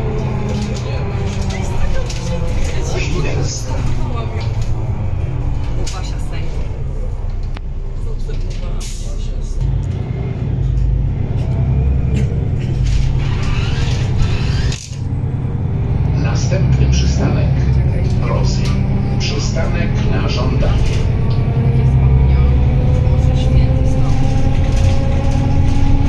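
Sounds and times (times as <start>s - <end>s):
bus diesel engine drone: 0.0s - 26.0s.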